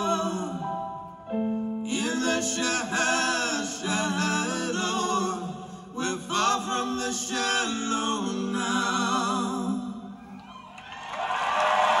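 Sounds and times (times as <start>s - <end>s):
live song music: 0.0s - 10.4s
crowd cheering: 10.3s - 12.0s.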